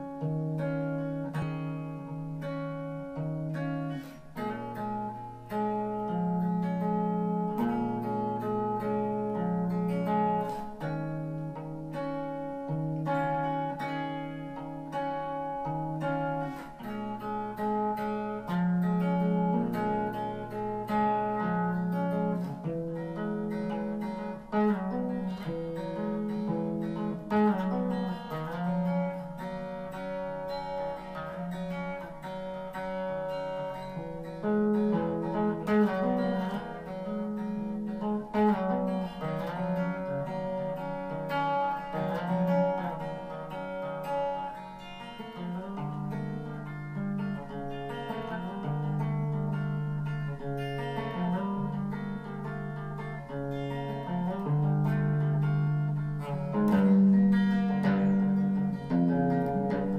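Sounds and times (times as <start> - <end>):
guitar picking slow chords: 0.0 - 59.9.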